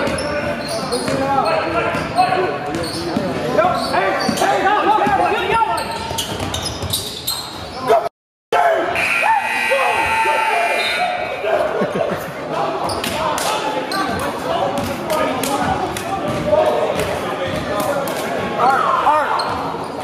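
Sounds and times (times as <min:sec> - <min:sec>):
sneaker squeaks: 0:00.0 - 0:07.9, 0:12.8 - 0:13.2, 0:19.2 - 0:20.0
players shouting and cheering: 0:04.0 - 0:05.9, 0:07.9 - 0:17.8, 0:18.4 - 0:19.8
steady buzzer tone: 0:09.0 - 0:11.3.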